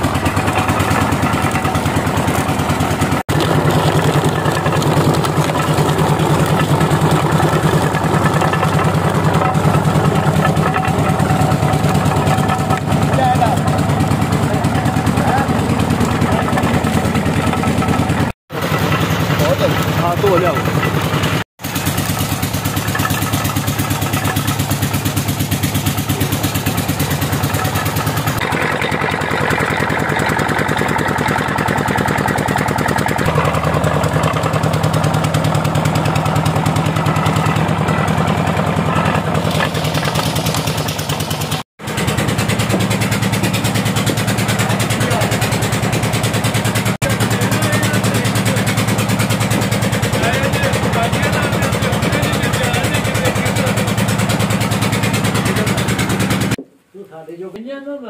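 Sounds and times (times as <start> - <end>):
engine running with fast beat: 0.0 - 56.6.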